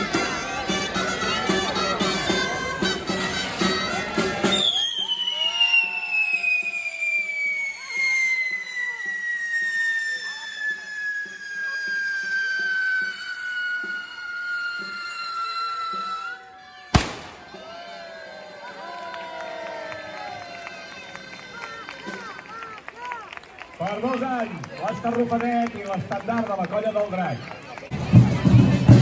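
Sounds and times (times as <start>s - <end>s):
faint drumbeats: 0.0s - 23.5s, 24.1s - 29.0s
firework whistle falling in pitch: 1.0s - 17.9s
firework bang: 17.0s - 17.7s.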